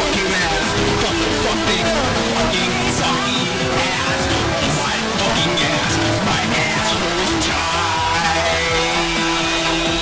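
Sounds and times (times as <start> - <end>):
distorted electronic music: 0.0 - 10.0.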